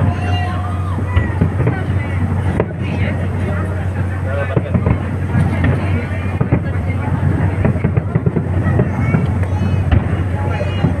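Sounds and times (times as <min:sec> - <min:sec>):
fireworks bangs: 0:00.0 - 0:11.0
murmur of voices: 0:00.0 - 0:11.0.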